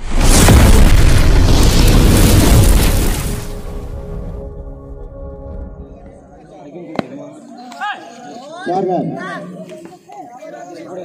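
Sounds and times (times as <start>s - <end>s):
loud explosion boom: 0.0s - 6.0s.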